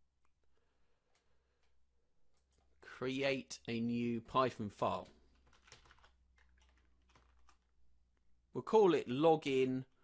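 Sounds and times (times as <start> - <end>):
computer keyboard typing: 4.8 - 7.8.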